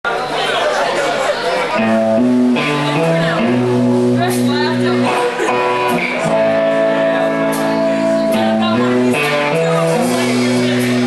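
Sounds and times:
crowd chatter: 0.0 - 11.0
electric and bass guitar held note: 1.8 - 11.0.

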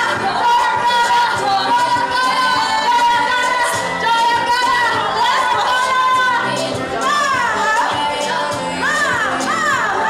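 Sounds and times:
music: 0.0 - 10.0
women singing long sliding notes: 0.0 - 10.0.

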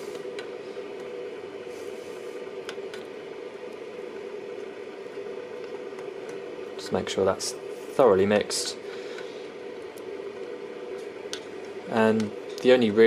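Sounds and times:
printer humming: 0.0 - 13.0.

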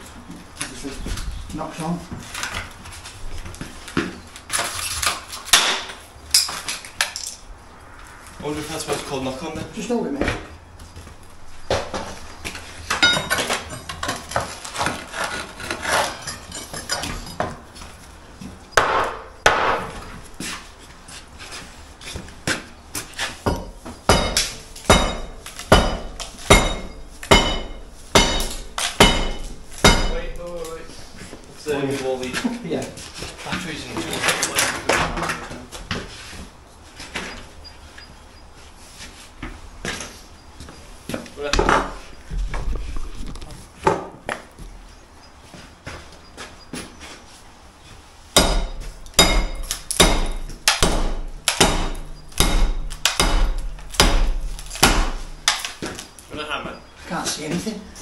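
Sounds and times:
metal tools striking timber: 5.5 - 7.4, 12.9 - 17.6, 18.7 - 20.0, 23.4 - 30.8, 48.4 - 55.8
heavy blows with metallic ring: 23.5 - 30.9, 48.4 - 55.5.

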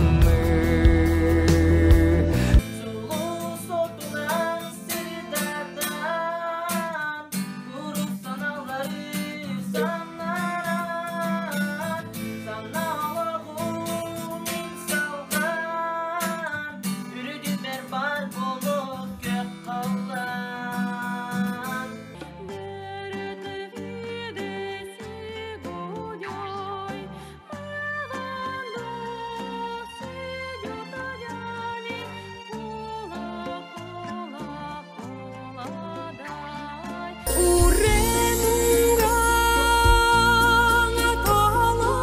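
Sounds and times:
man singing: 0.0 - 32.1, 33.0 - 42.0
strummed acoustic guitar: 0.0 - 42.0.

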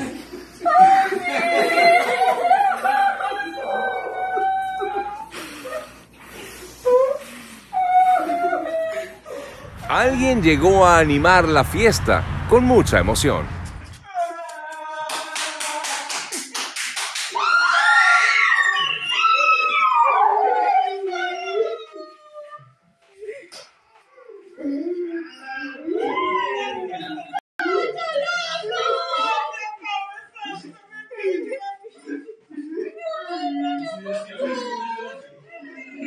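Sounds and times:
dog whining and howling: 17.9 - 22.7.

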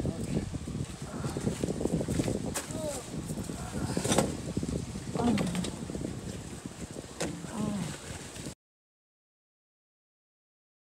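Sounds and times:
wind noise on microphone: 0.0 - 8.6.

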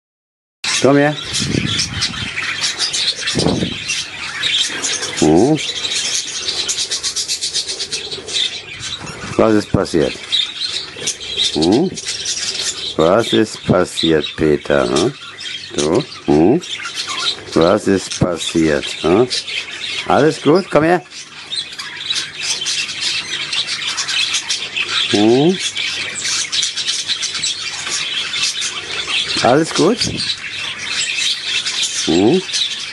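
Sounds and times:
budgerigar chattering: 0.7 - 32.9.

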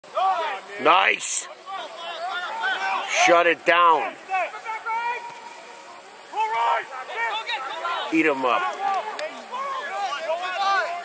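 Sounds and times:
men shouting from a distance: 0.0 - 11.0.

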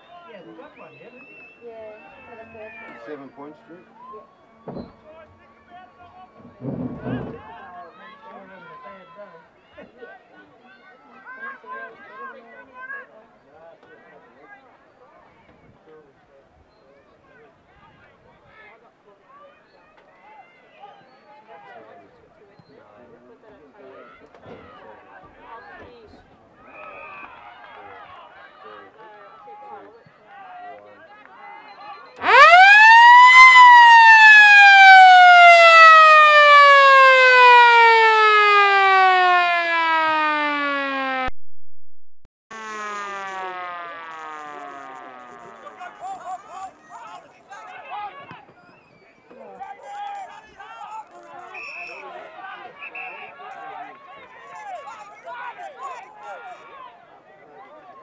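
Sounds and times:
crowd chatter: 0.0 - 41.1, 42.5 - 58.0
motor siren wailing: 32.2 - 41.3, 42.5 - 46.0.

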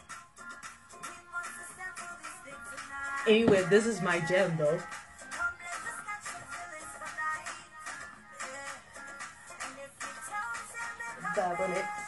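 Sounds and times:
song through laptop speakers: 0.0 - 12.0.

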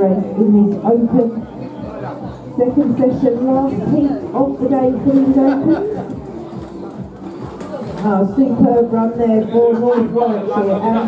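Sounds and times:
faint background music: 0.0 - 11.0
voices: 0.0 - 11.0.

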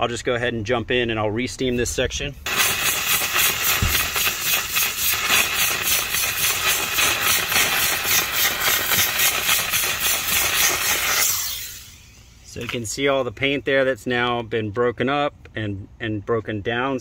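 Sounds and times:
steam cleaner hissing: 2.5 - 12.3.

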